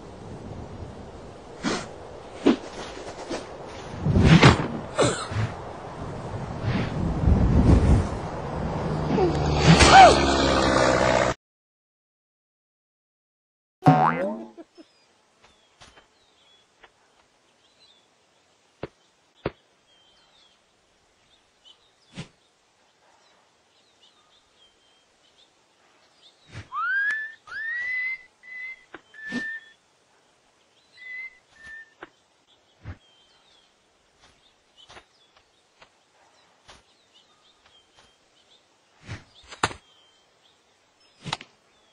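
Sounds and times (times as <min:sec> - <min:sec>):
cartoon sliding wobbling pitch sound: 0:13.9 - 0:14.6.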